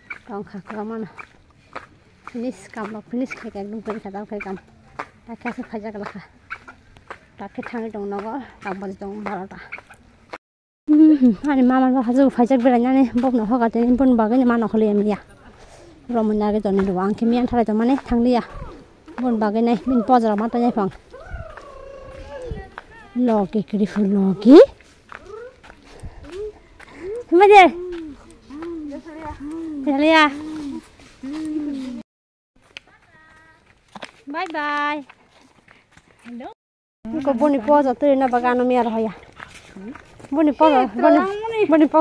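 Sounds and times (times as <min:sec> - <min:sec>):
woman's voice: 0:00.2 - 0:01.2, 0:02.3 - 0:04.6, 0:05.2 - 0:06.3, 0:07.4 - 0:09.8, 0:10.9 - 0:24.8, 0:26.2 - 0:27.9, 0:28.5 - 0:32.0, 0:36.2 - 0:42.0
woman speaking: 0:00.3 - 0:01.2, 0:02.3 - 0:04.6, 0:05.2 - 0:06.3, 0:07.4 - 0:09.8, 0:11.0 - 0:15.5, 0:16.1 - 0:21.0, 0:22.2 - 0:24.8, 0:27.0 - 0:27.9, 0:28.5 - 0:30.8, 0:36.3 - 0:39.2, 0:39.8 - 0:42.0.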